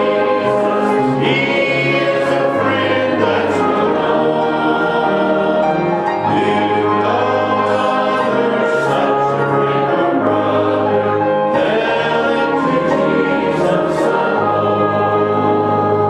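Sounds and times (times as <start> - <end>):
choir singing held chords: 0.0 - 16.0.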